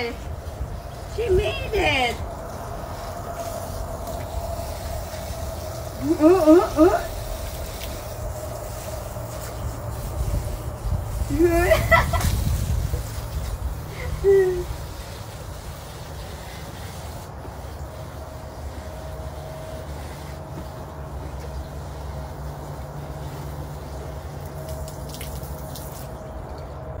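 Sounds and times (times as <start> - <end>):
steady low hum: 0.0 - 27.0
water trickling onto plants: 0.0 - 27.0.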